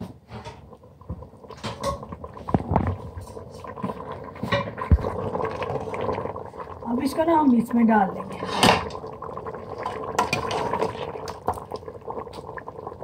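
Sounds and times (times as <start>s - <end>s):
ladle scraping a metal pot: 8.4s - 9.0s.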